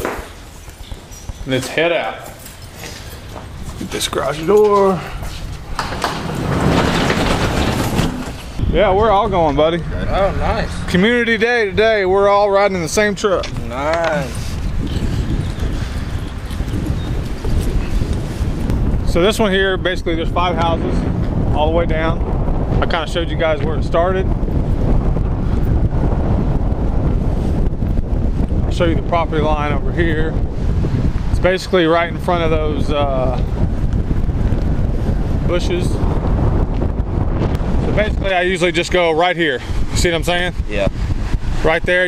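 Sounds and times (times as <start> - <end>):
wind buffeting microphone: 0.0 - 42.0
garage door rollers rumbling: 3.3 - 8.6.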